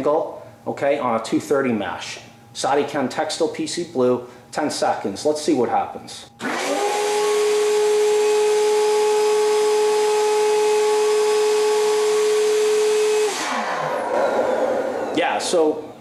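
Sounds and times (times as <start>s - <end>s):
motor winding down: 6.4s - 15.9s
vacuum pump motor humming: 6.4s - 16.0s.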